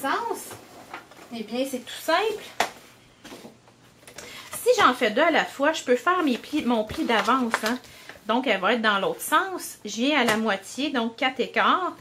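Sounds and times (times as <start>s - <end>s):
faint paper rustling: 0.2s - 8.5s.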